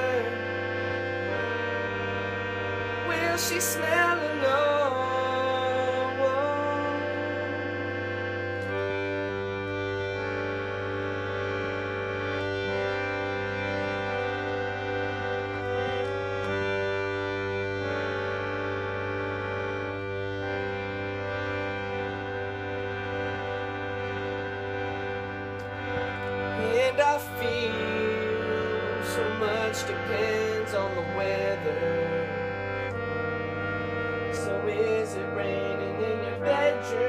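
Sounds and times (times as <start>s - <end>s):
harmonium chords: 0.0s - 37.0s.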